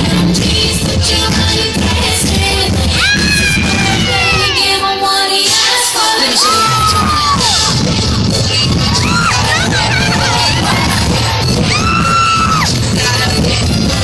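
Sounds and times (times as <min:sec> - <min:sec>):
live pop music: 0:00.0 - 0:14.0
crowd yelling: 0:02.8 - 0:05.1, 0:06.0 - 0:13.4.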